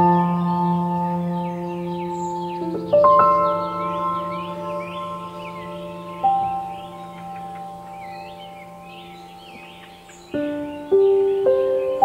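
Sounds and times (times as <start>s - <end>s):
ringing bell-like chord: 0.0s - 9.8s
faint bird chirps: 0.0s - 12.0s.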